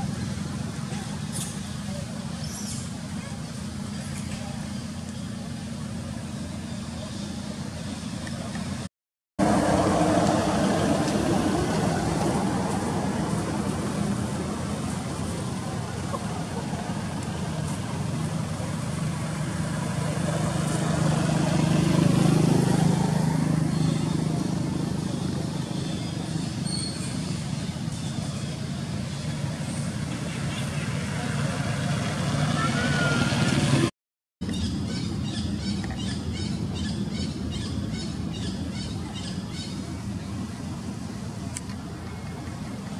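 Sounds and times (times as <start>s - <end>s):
vehicle engine humming: 0.0s - 42.9s.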